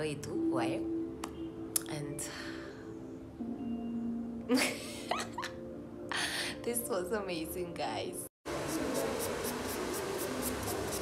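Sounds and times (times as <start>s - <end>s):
nail file rasping: 8.7s - 11.0s.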